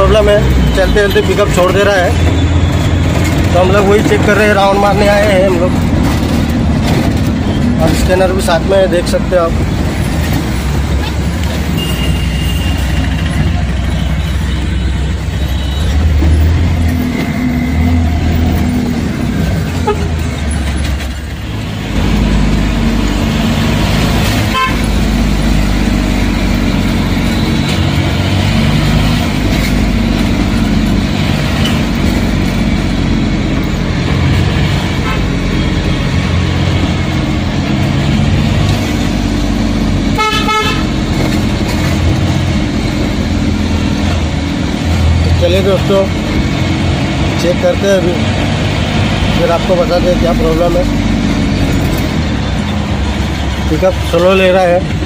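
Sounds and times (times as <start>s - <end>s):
diesel engine and road noise: 0.0s - 55.0s
vehicle horn honking: 11.8s - 13.0s, 24.5s - 25.0s, 35.0s - 35.3s, 40.2s - 41.0s.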